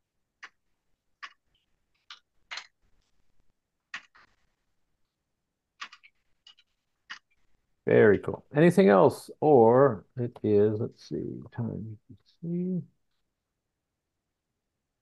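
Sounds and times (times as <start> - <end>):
computer keyboard keystrokes: 2.0 - 2.7, 5.8 - 7.3.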